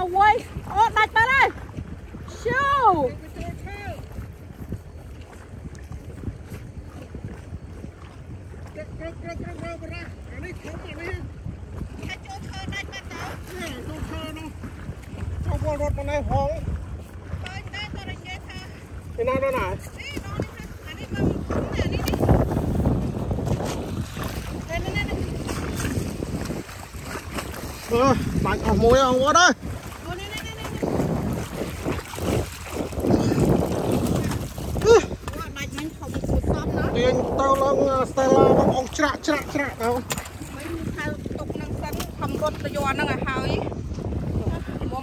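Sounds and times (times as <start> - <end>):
wind buffeting microphone: 0.0 - 45.0
water washing against rocks: 16.8 - 44.9.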